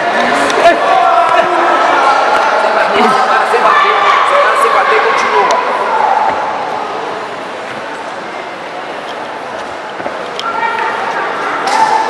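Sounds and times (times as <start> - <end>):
spectators shouting: 0.0 - 7.1.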